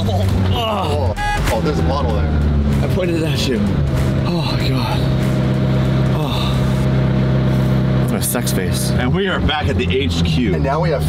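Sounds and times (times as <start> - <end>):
car engine droning: 0.0 - 11.0.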